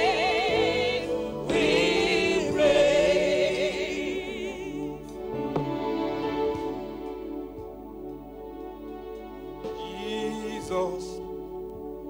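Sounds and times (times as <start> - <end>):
voices singing gospel song: 0.0 - 6.8, 9.6 - 11.3.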